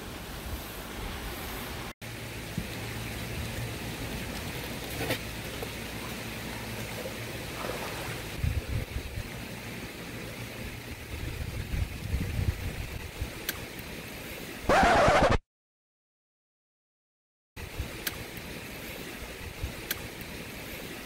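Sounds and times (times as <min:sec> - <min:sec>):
running water rushing: 0:00.0 - 0:15.3.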